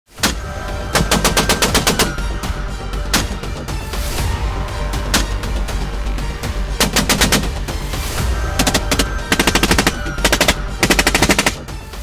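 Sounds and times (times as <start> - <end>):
background music: 0.1 - 12.0
rapid rifle fire: 8.6 - 11.7.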